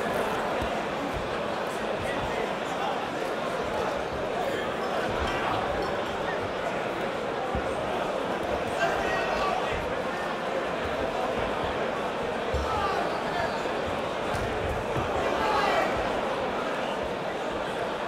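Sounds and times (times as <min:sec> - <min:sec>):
crowd talking and calling out: 0:00.0 - 0:18.0.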